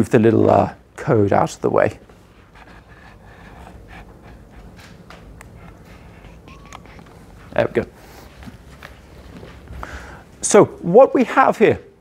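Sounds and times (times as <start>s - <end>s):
low room hum: 0.0s - 12.0s
footsteps on hard floor: 4.6s - 9.9s.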